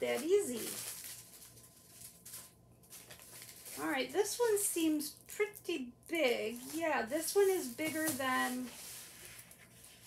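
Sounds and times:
paper wrapping rustling: 0.0s - 4.6s, 6.2s - 10.0s.

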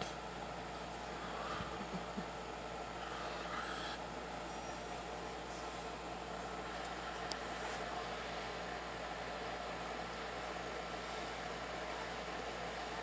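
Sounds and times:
fan hiss and low hum: 0.0s - 13.0s.

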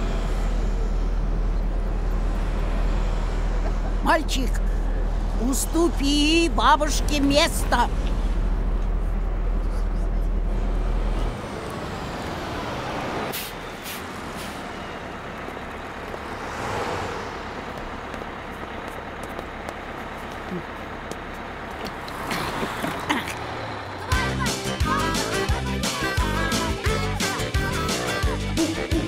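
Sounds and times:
bus engine rumble: 0.0s - 29.0s.

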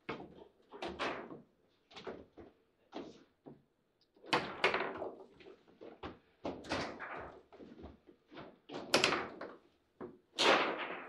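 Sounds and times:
table football knocks and clacks: 4.2s - 5.3s, 5.9s - 11.0s.

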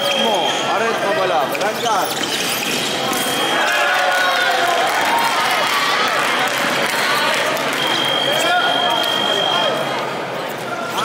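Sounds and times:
shoes squeaking on floor: 0.0s - 3.6s.

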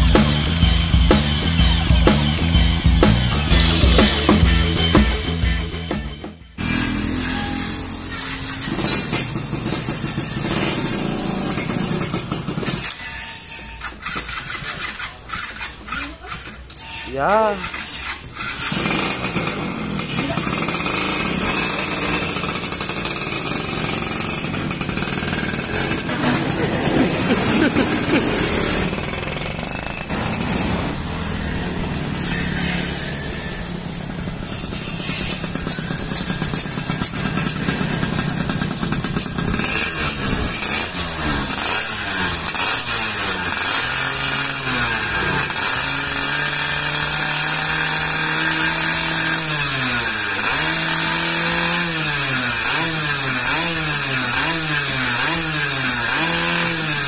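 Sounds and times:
two-stroke engine revving: 0.0s - 13.0s, 13.8s - 57.0s.

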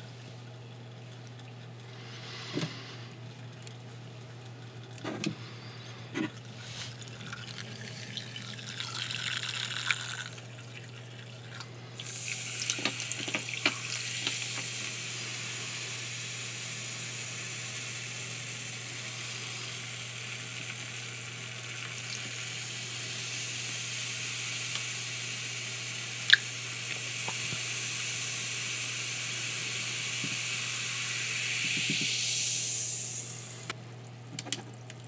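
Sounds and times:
fizzing hiss of carbonation: 6.5s - 33.8s.

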